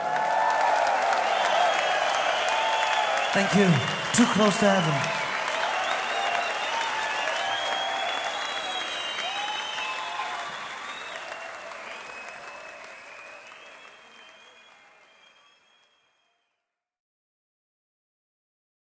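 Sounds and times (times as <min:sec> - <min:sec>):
audience applauding and cheering: 0:00.0 - 0:16.0
whistles: 0:01.2 - 0:16.5.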